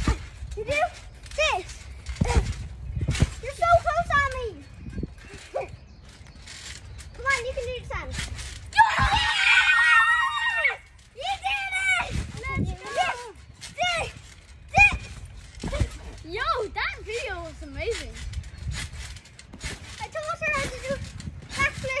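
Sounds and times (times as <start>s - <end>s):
bodies landing on trampoline: 0.0s - 10.6s, 11.2s - 22.0s
children shrieking and squealing: 8.7s - 14.2s
long loud scream: 8.8s - 10.8s.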